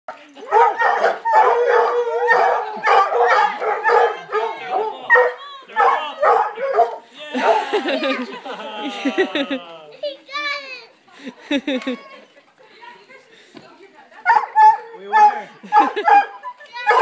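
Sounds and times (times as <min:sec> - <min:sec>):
hounds barking and baying: 0:00.3 - 0:07.9, 0:14.2 - 0:17.0.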